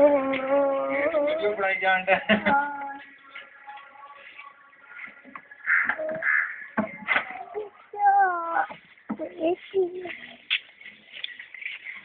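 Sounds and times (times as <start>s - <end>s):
boy babbling: 0.0s - 1.6s, 2.4s - 3.0s, 7.3s - 8.7s, 9.3s - 10.2s
boy calling out: 7.4s - 8.7s.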